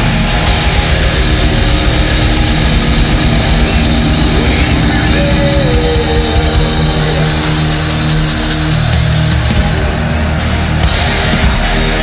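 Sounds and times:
live heavy metal music: 0.0 - 12.0.

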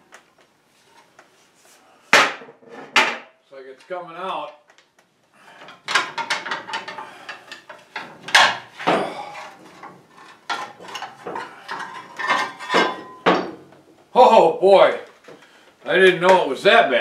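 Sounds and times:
metal clinks and scrapes: 5.4 - 13.3.

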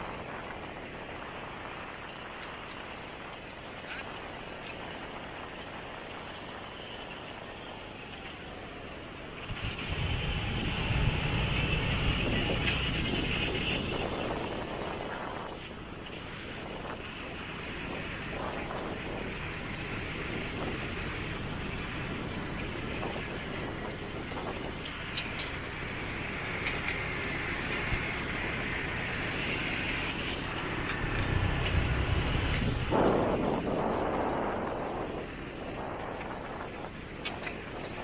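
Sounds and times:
motorbike and scooter traffic: 0.0 - 38.0
motorbike rumbling past: 9.4 - 15.6.

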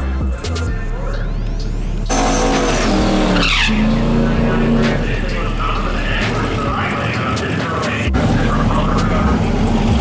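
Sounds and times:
engine revving hard: 2.1 - 7.0
tyres spinning in a burnout: 2.1 - 10.0.

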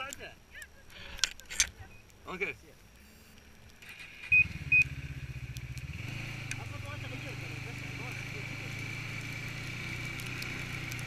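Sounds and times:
short high beeps: 3.0 - 3.4, 4.2 - 5.0.

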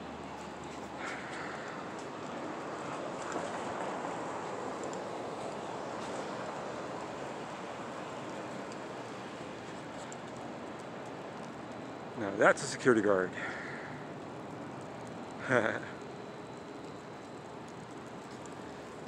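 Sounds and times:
distant street traffic: 0.0 - 19.0.

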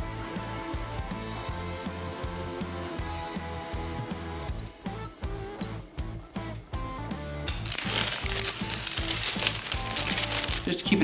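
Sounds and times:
background music: 0.0 - 11.0
plastic tape crinkling: 7.5 - 10.8.

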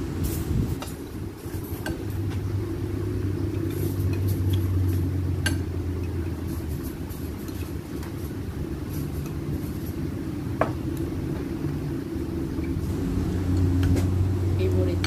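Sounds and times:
low mechanical rumble: 0.0 - 15.0.

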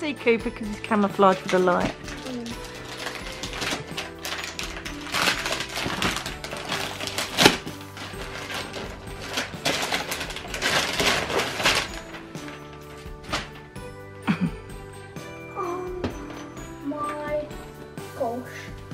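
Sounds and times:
background music with held notes: 0.0 - 18.9
wrapping paper tearing: 1.3 - 13.7.

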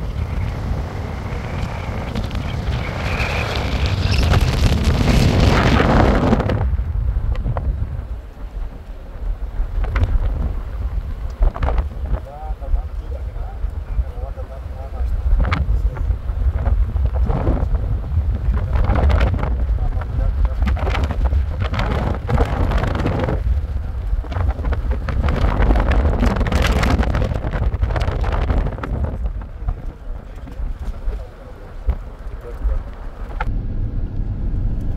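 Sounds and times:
road noise: 0.0 - 34.9
wind buffeting microphone: 0.0 - 34.9.

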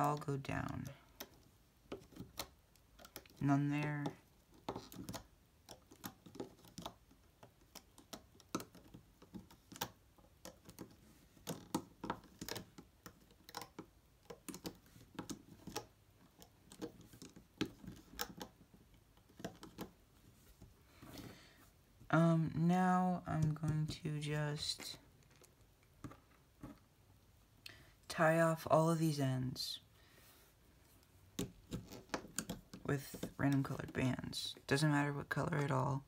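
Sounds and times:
plastic hook clicking on pegs: 0.0 - 20.0, 31.4 - 33.3.

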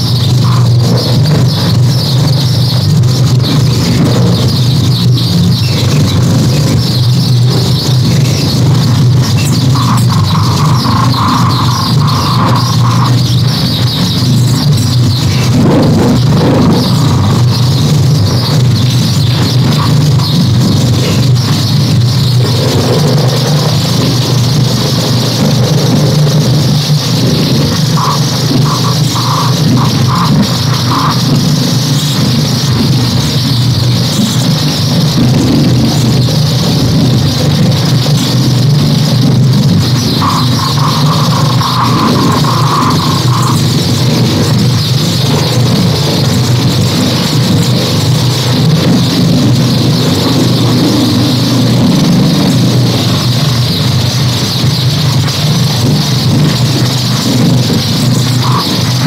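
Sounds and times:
high hissing noise: 0.0 - 59.0
loud low drone: 0.0 - 59.0.

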